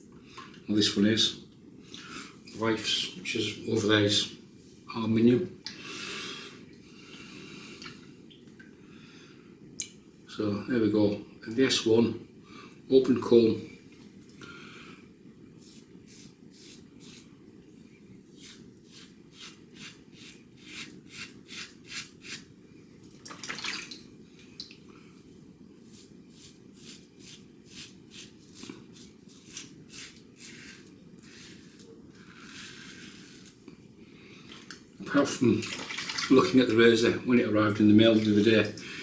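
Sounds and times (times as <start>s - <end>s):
razor scraping stubble: 15.6s - 17.3s, 18.3s - 22.4s, 25.9s - 33.6s.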